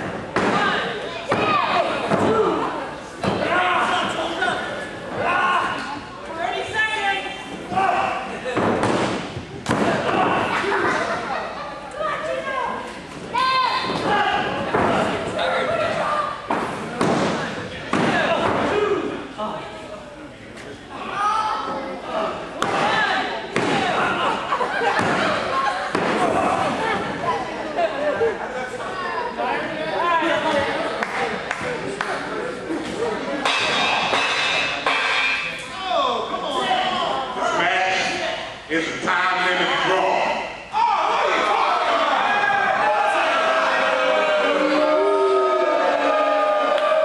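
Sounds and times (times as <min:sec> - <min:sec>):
spectators shouting and talking: 0:00.0 - 0:47.0.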